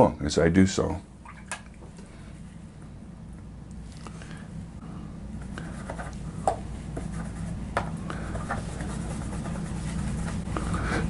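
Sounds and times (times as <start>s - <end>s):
low room hum: 0.0s - 11.0s
brush scrubbing paint in palette: 5.4s - 11.0s.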